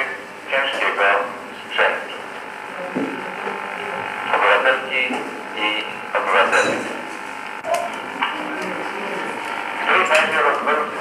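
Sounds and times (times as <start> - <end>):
indistinct talk: 0.0 - 11.0.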